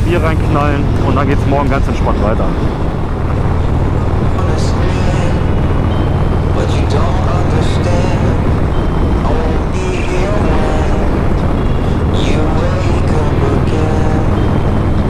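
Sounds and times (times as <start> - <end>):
motorcycle engine cruising: 0.0 - 15.0
wind noise on microphone: 0.0 - 15.0
music with singing voice: 4.2 - 15.0.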